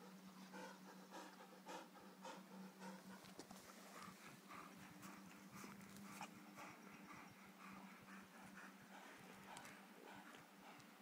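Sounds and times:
dog panting faintly: 0.0s - 11.0s.

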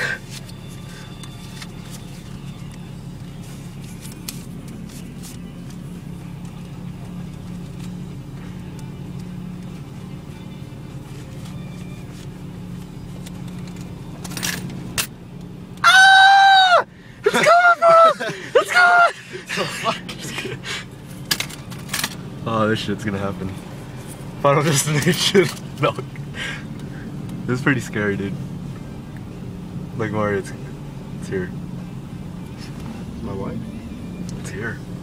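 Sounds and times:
car wash hum: 0.0s - 35.0s
person yelping: 15.8s - 20.1s.

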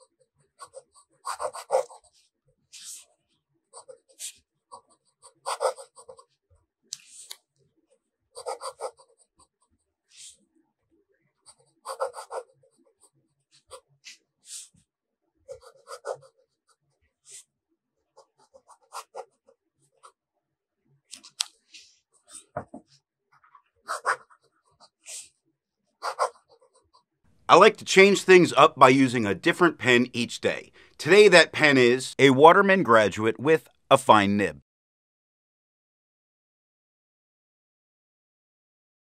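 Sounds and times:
pen nib scratching on paper: 0.6s - 2.2s, 8.4s - 10.4s, 11.5s - 12.6s, 15.5s - 16.4s.

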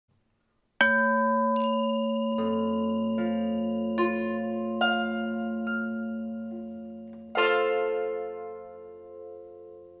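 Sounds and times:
bell-like chime ringing: 0.9s - 7.3s
higher shimmering chime: 1.2s - 7.1s.

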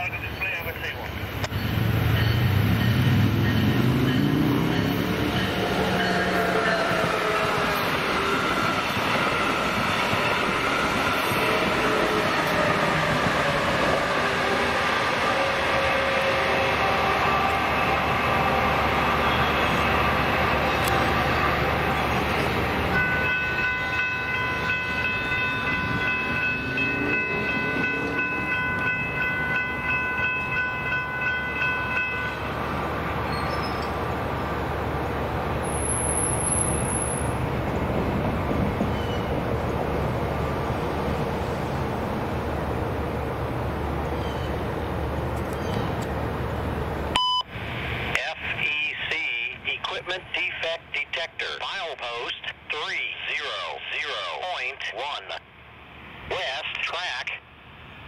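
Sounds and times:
train rumbling past: 0.0s - 51.8s.

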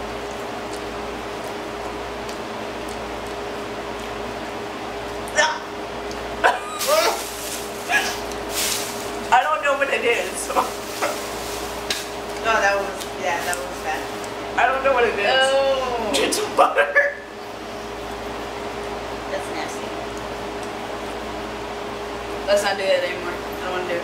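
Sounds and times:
faint hum: 0.0s - 24.0s
woman laughing: 6.4s - 7.2s.

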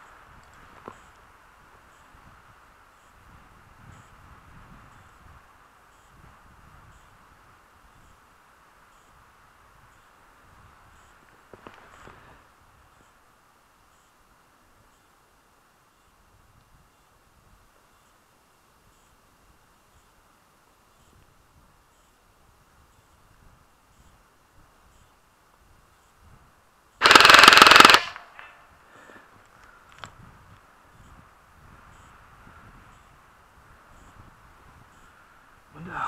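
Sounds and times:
rapid automatic gunfire: 27.0s - 28.3s
rustling of shooter moving: 27.0s - 28.5s.

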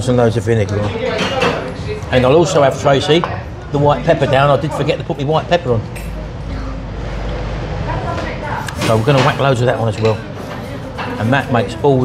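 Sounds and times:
faint distant chatter: 0.0s - 12.0s.

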